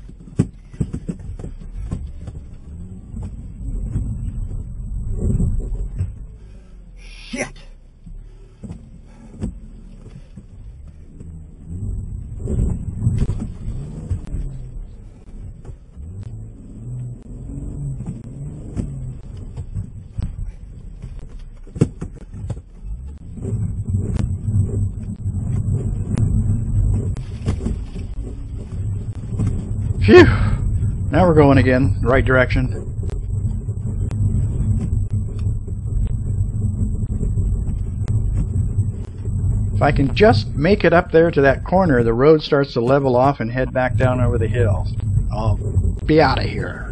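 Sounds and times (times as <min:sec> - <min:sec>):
car engine revving: 0:00.0 - 0:46.9.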